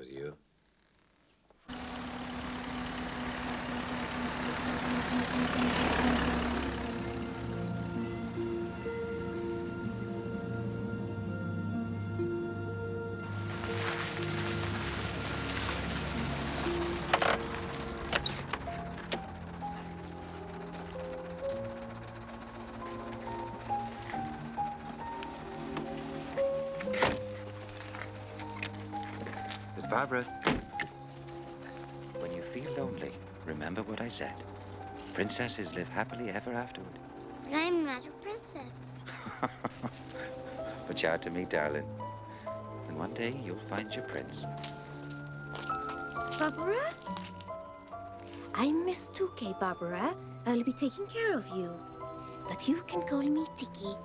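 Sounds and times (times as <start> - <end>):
car engine running: 1.7 - 50.1
orchestral music: 1.7 - 54.0
car door shutting: 17.0 - 19.3, 26.8 - 27.5, 30.4 - 31.0.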